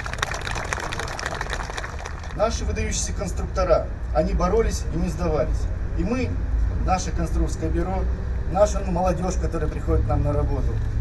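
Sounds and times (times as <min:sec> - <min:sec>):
close hands clapping: 0:00.0 - 0:02.4
crowd applauding: 0:00.0 - 0:02.4.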